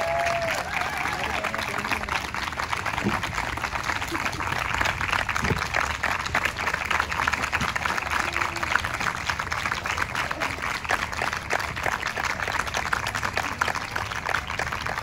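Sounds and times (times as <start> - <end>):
voices: 0.0 - 14.2
audience clapping: 0.0 - 15.0.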